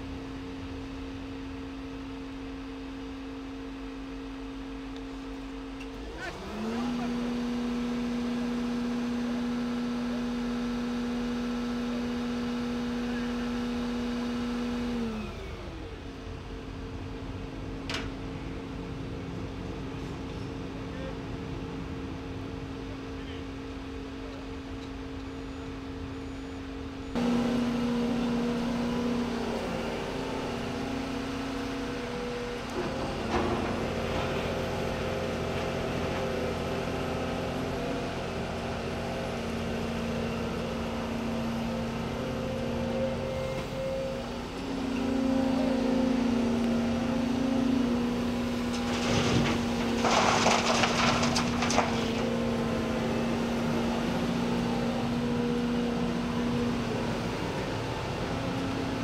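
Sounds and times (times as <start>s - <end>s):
excavator diesel engine under load: 27.0s - 59.0s.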